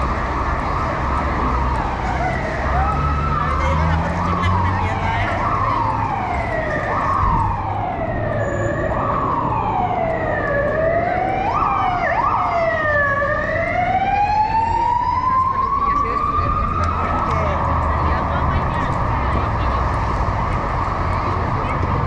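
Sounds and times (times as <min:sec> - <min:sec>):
city street traffic: 0:00.0 - 0:22.0
emergency siren wailing: 0:00.0 - 0:22.0.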